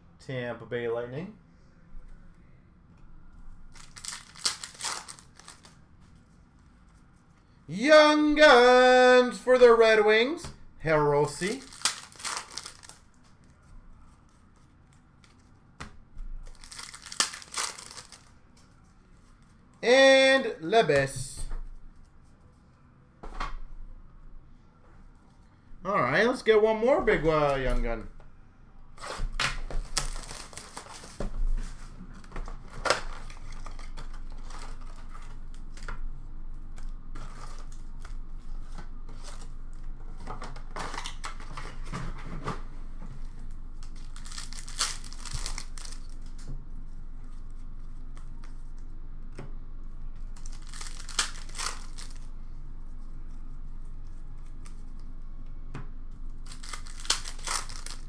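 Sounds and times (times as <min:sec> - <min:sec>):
card pack wrappers tearing: 0:03.7 - 0:05.8, 0:11.3 - 0:13.1, 0:16.4 - 0:18.3, 0:29.8 - 0:31.1, 0:43.9 - 0:46.3, 0:50.4 - 0:52.3, 0:56.4 - 0:58.0.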